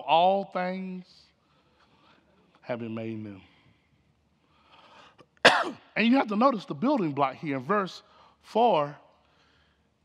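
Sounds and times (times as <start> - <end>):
man coughing: 5.4 - 5.9.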